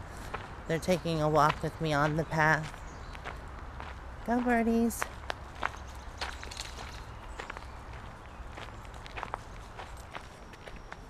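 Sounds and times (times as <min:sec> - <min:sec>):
footsteps on gravel: 0:00.0 - 0:11.0.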